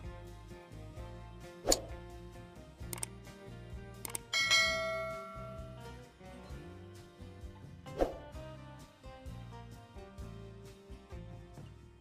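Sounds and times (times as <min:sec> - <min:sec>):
background music: 0:00.0 - 0:12.0
mouse clicks: 0:02.9 - 0:03.2, 0:04.0 - 0:04.3
bell chime: 0:04.1 - 0:05.9.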